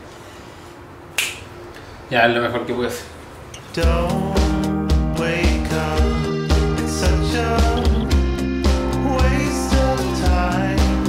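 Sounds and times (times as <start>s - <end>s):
finger snap: 1.1s - 1.5s.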